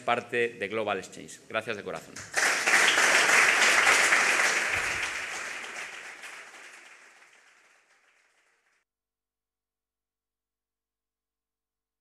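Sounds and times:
audience applauding: 2.2 - 8.8.

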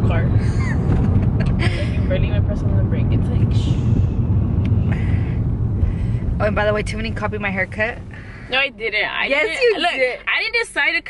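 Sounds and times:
car cabin engine and road rumble: 0.0 - 11.0.

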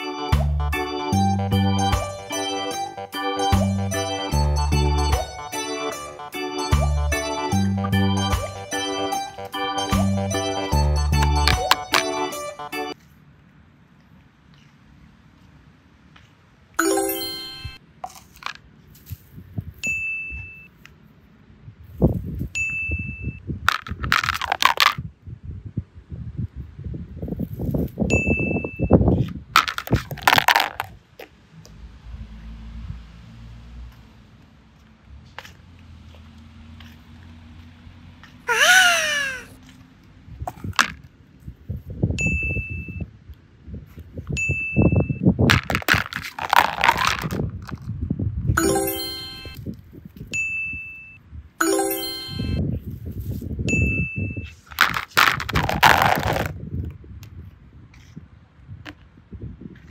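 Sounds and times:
bright ding: 16.8 - 17.8, 48.6 - 49.6, 50.4 - 52.6
chiming jingles: 16.8 - 17.8, 48.6 - 49.6, 51.6 - 52.6
crunching and rustling: 23.7 - 25.0, 29.2 - 31.3, 45.5 - 47.9, 54.5 - 56.6.

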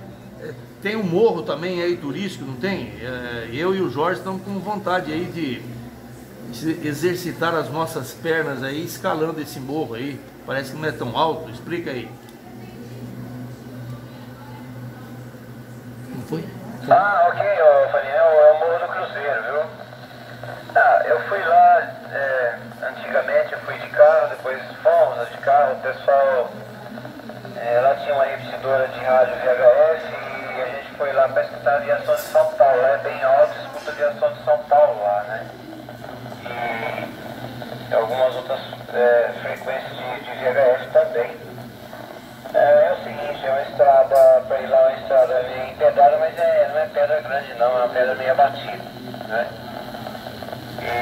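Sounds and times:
steady low hum: 0.0 - 51.0
man's voice over radio speaker: 0.8 - 5.7, 6.6 - 12.1, 16.2 - 26.7, 27.4 - 51.0.

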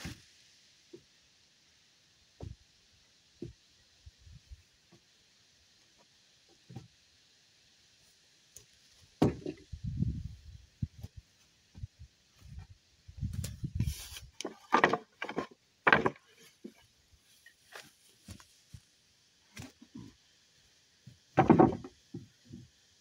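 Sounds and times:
wooden boards knocking and clattering: 9.2 - 9.6, 14.4 - 16.8, 21.3 - 22.7.

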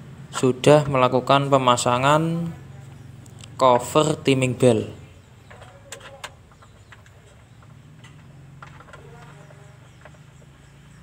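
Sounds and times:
faint clicks and metal knocks: 5.4 - 10.9.

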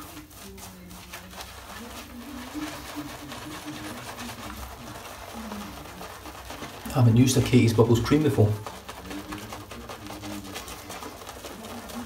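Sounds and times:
shaving brush swishing lather: 0.0 - 12.0.

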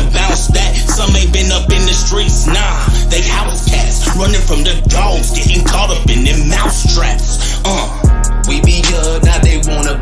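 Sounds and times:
deep bass hits: 0.0 - 10.0
rapping over a beat: 0.0 - 10.0.

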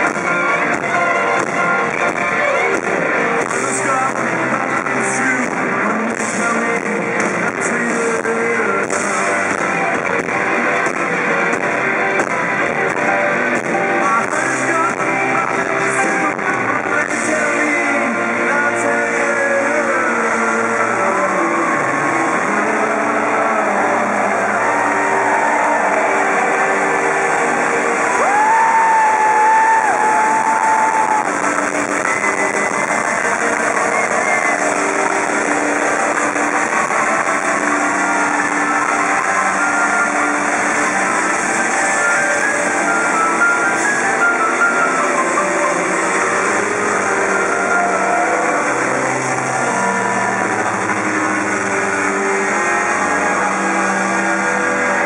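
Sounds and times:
live rock band playing: 0.0 - 55.0.

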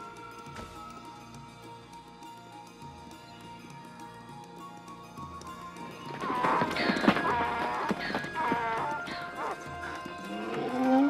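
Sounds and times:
background music: 0.0 - 11.0
hooves clattering on rock: 6.1 - 11.0
donkey crying out: 6.3 - 10.9.

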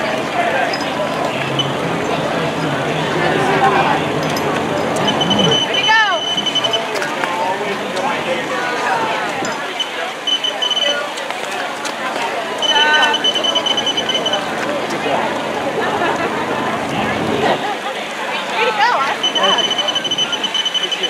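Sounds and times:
spectators' voices and cheers: 0.0 - 21.0
rapid high-pitched electronic beeping: 5.0 - 6.9, 9.8 - 11.0, 12.6 - 14.5, 19.2 - 21.0.

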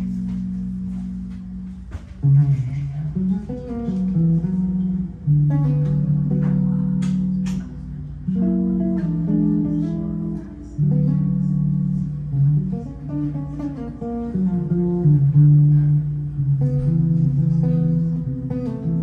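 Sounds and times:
electric bass chords: 0.0 - 19.0.

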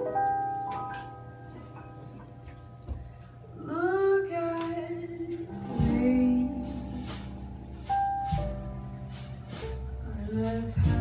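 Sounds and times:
stage piano chords: 0.0 - 11.0
woman singing: 3.6 - 7.4, 10.0 - 11.0.

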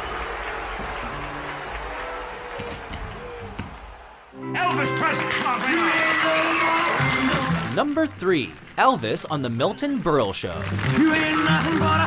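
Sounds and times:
crowd noise: 0.0 - 5.4, 6.1 - 10.8.

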